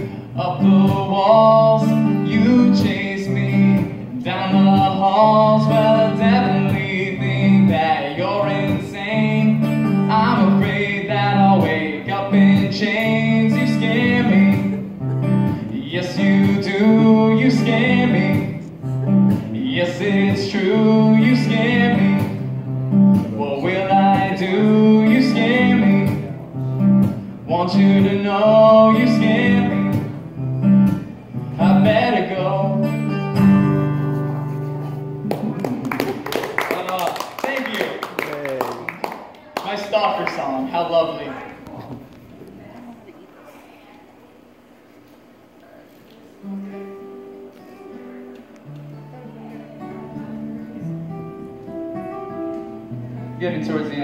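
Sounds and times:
man singing: 0.0s - 15.0s, 15.6s - 22.6s, 23.2s - 26.7s, 27.4s - 30.2s, 31.4s - 33.5s
acoustic guitar strumming: 0.0s - 36.3s, 46.2s - 54.0s.

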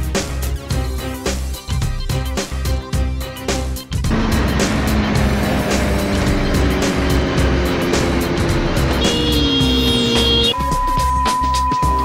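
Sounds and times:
background music with steady beat: 0.0s - 12.0s
motorcycle engine at speed: 4.1s - 10.5s.

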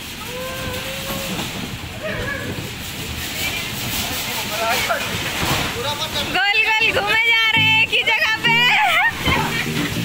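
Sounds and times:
bumper cars hiss and rumble: 0.0s - 6.4s.

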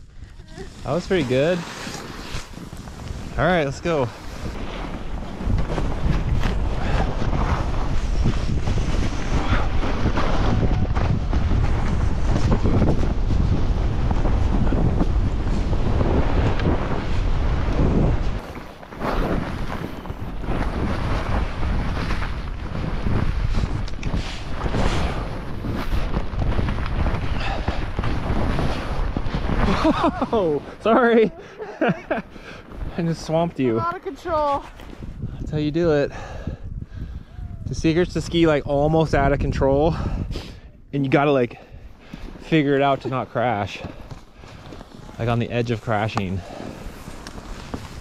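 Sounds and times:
wind buffeting microphone: 0.0s - 48.0s
skis hissing through snow: 0.2s - 10.5s, 15.4s - 31.1s, 44.4s - 48.0s.

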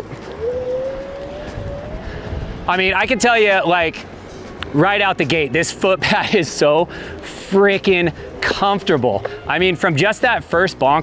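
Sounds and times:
low rumble: 0.0s - 4.8s.

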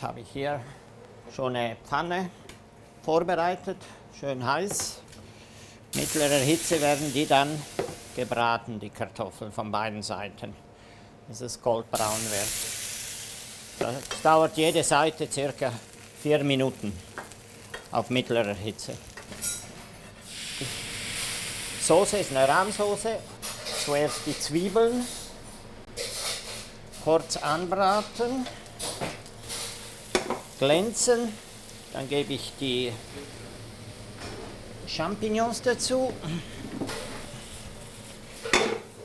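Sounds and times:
frying hiss: 5.9s - 8.4s, 11.9s - 25.3s, 25.9s - 39.0s
food sizzling in a pan: 6.0s - 8.3s, 12.0s - 19.6s, 20.2s - 23.0s, 26.0s - 38.5s.

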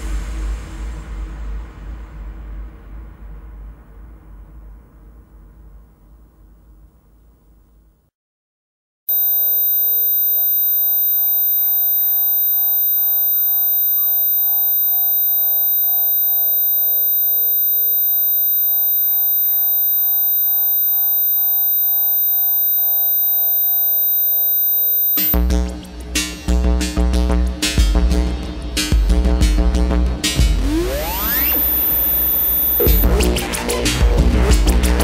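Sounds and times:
electronic synthesizer music: 30.4s - 34.8s.

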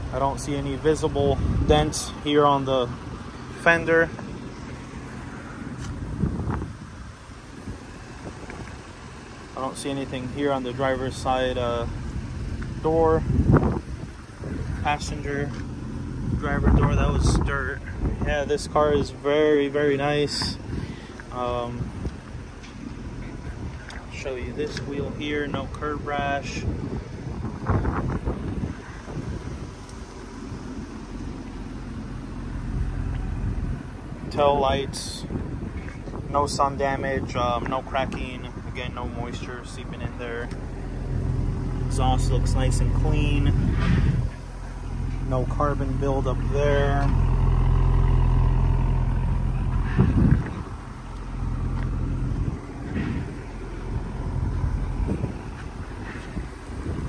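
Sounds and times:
car engine idling: 0.0s - 57.0s
wind rumble on microphone: 0.0s - 57.0s.

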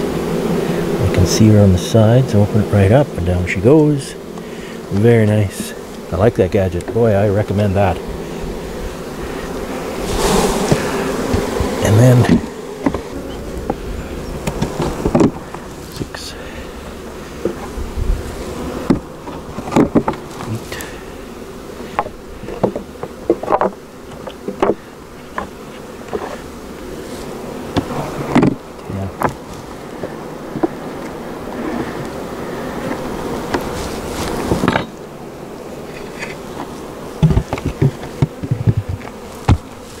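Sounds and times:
honeybees buzzing: 0.0s - 40.0s
wooden knocks and clunks: 10.6s - 13.8s, 14.4s - 15.6s, 18.8s - 20.5s, 21.9s - 26.4s, 27.7s - 28.6s, 29.2s - 30.8s, 34.3s - 35.0s, 36.0s - 39.8s.

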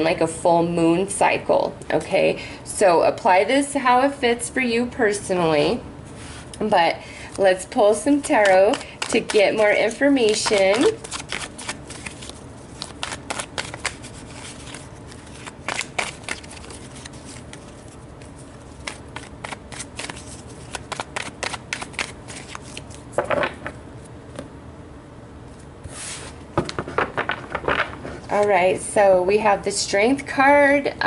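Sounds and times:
cards being shuffled: 8.3s - 23.7s, 25.8s - 28.5s.

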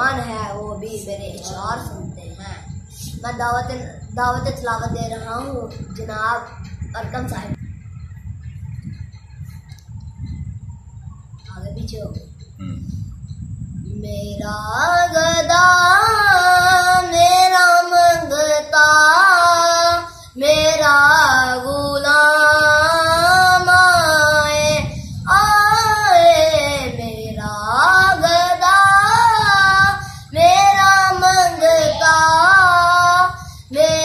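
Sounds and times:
boy singing solo: 14.0s - 34.0s.

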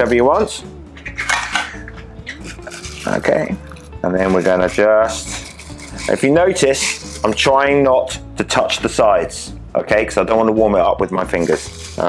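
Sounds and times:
crushed ice crunching in metal cup: 2.4s - 7.5s, 11.3s - 12.0s.

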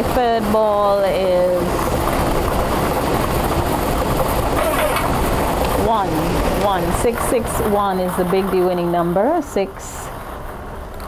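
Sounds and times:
lottery machine whirring: 0.0s - 10.4s
plastic balls tumbling: 1.2s - 7.6s.

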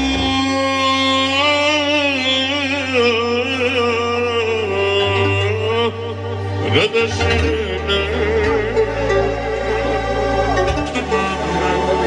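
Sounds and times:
man singing into a microphone: 0.0s - 10.0s, 10.7s - 12.0s
keyboard bass and chords: 0.0s - 12.0s.

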